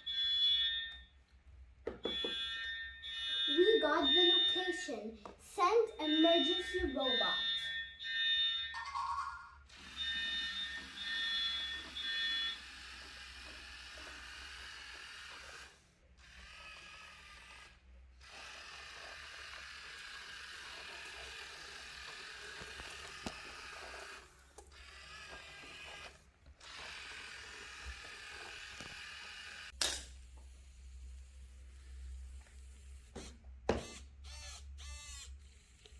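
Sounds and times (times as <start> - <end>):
electronic buzzer beeps: 0.0 - 1.0, 2.1 - 4.9, 5.9 - 13.0, 33.8 - 35.3.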